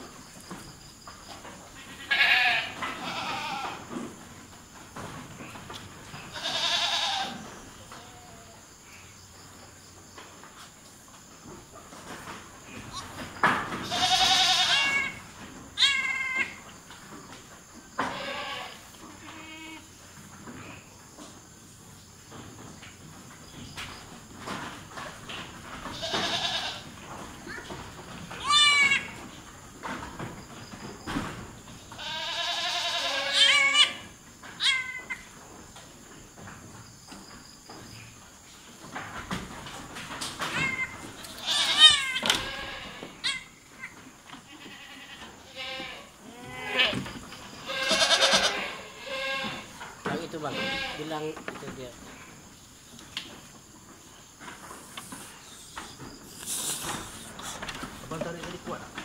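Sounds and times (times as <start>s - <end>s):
goat bleating: 1.8s - 3.9s, 6.3s - 8.6s, 13.8s - 15.2s, 15.8s - 16.6s, 18.0s - 19.9s, 25.9s - 26.9s, 28.4s - 29.2s, 31.9s - 34.0s, 40.5s - 47.0s, 47.6s - 51.2s.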